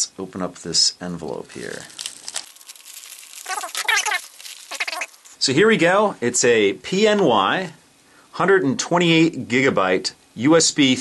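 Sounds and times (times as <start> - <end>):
plastic mailer rustling and squeaking: 1.2 - 5.4.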